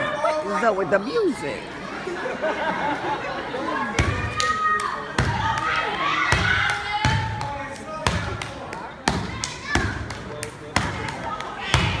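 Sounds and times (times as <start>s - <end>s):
body slaps and claps: 6.5s - 12.0s.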